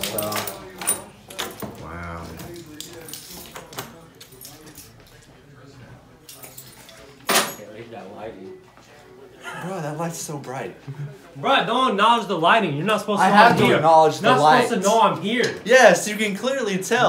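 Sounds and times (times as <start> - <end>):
keys jangling: 2.4 - 5.3.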